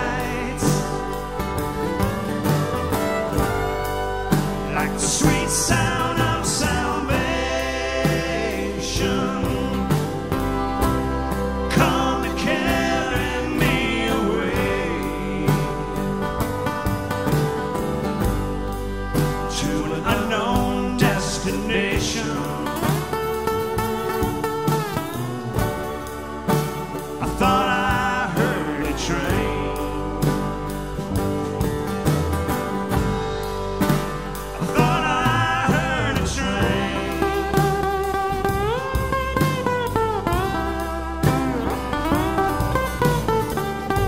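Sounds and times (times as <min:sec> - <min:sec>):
drums: 0:00.0 - 0:44.0
electric guitars: 0:00.0 - 0:44.0
fiddle: 0:00.0 - 0:44.0
live country-rock band: 0:00.0 - 0:44.0.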